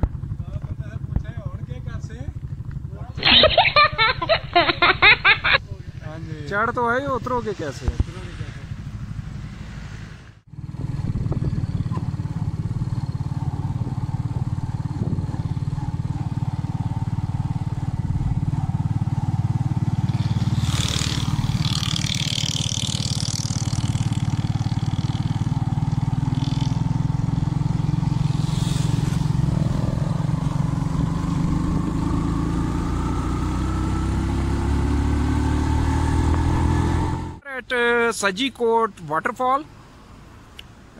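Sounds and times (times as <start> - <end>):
small motorcycle engine: 0.0 - 37.4.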